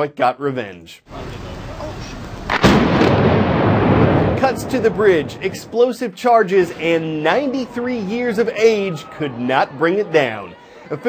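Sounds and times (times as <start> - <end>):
explosive blast: 1.2 - 5.8.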